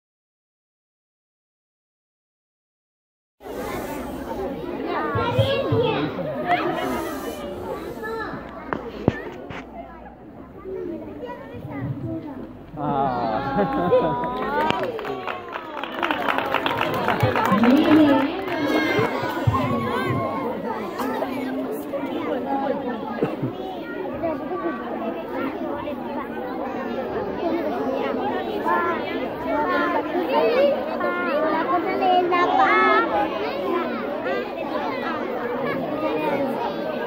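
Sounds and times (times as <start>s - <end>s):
children talking and calling out: 3.4s - 37.0s.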